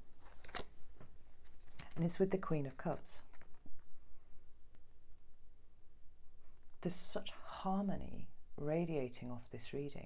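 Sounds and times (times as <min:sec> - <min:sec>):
cards rustling and clicking: 0:00.2 - 0:02.1, 0:03.2 - 0:03.9.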